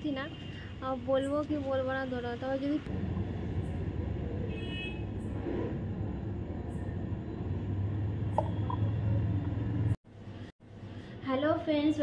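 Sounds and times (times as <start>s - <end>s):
distant road traffic rumble: 0.0s - 10.0s.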